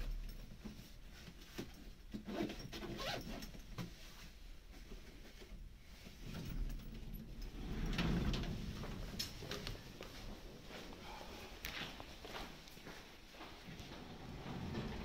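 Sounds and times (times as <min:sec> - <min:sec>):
lift doors sliding open: 0:06.5 - 0:09.6, 0:13.8 - 0:15.0
footsteps: 0:08.7 - 0:15.0.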